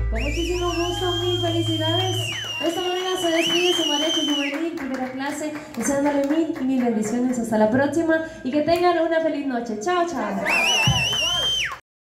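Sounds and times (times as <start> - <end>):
person whistling shrilly: 0.0 - 4.6, 10.4 - 11.8
voices cheering: 0.2 - 4.6, 10.3 - 11.8.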